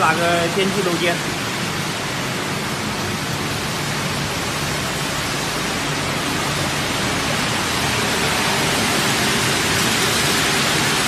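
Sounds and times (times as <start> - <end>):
cooling fans blowing: 0.0 - 11.0.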